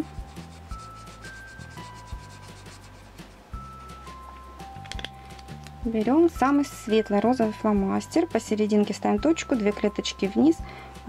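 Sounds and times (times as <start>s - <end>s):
marker rubbing on paper: 0.0s - 3.5s
soft background music: 0.0s - 11.0s.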